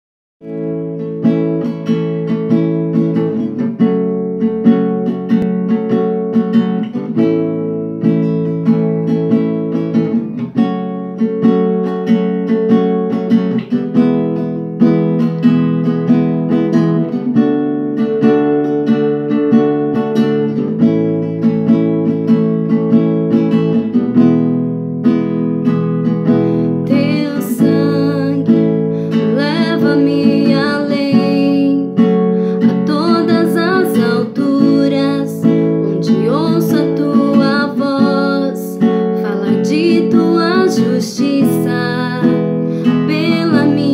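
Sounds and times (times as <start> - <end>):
acoustic guitar strumming chords: 0.4 - 43.9
woman singing: 26.7 - 43.9.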